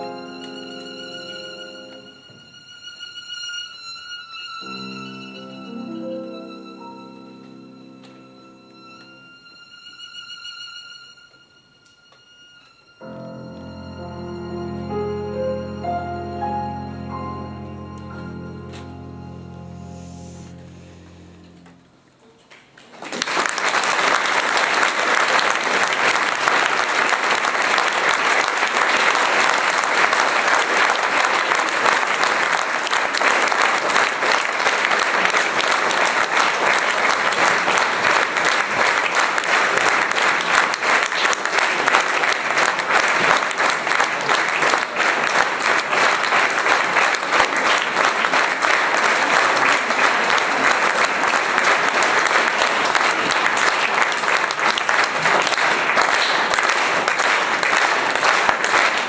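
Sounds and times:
audience applauding: 22.4 - 59.0.

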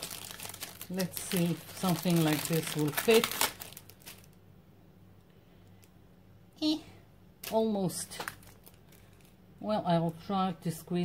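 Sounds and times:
paper crinkling: 0.0 - 4.4, 7.4 - 9.4.

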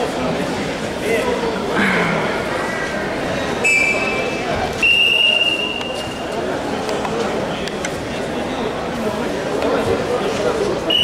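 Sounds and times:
murmur of crowd: 0.0 - 11.0
referee whistle blast: 3.6 - 4.2.

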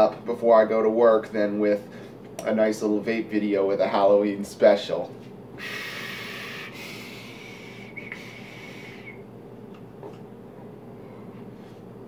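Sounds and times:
faint thin whistle: 7.8 - 9.2.

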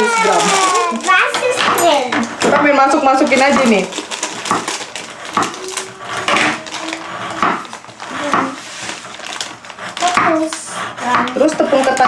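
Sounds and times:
knife chopping on wooden board: 7.4 - 7.6, 10.1 - 10.4.

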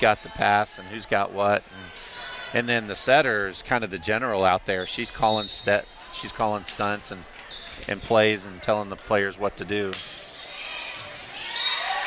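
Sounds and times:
gymnasium crowd noise: 0.0 - 12.0
ball hitting court: 9.9 - 10.2.

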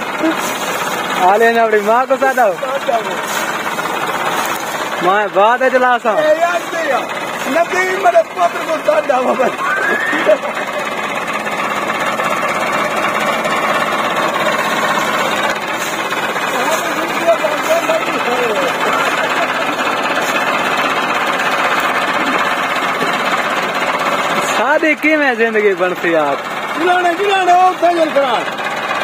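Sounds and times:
tractor diesel engine knocking: 0.0 - 29.0
faint voices: 12.0 - 23.6.

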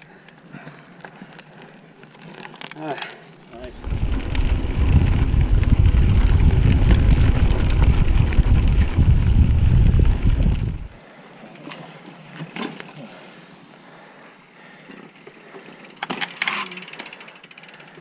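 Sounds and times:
bike rumbling over grassy trail: 3.5 - 11.0
wind buffeting microphone: 3.6 - 11.0.

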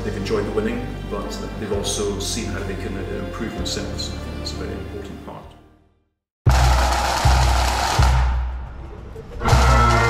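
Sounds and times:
bass drum beats: 6.4 - 10.0
snare drum roll: 6.5 - 8.6, 9.4 - 10.0
bagpipes droning: 9.5 - 10.0.

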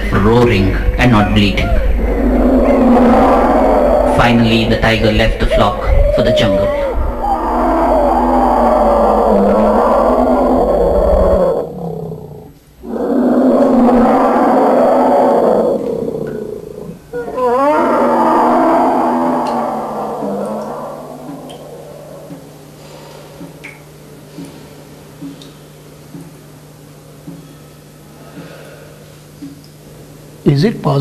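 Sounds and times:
tiger roaring: 0.0 - 22.7.

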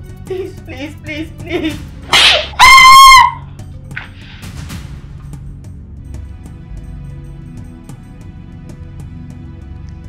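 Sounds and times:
faint background music: 0.0 - 10.0
woman screaming: 2.2 - 3.5.

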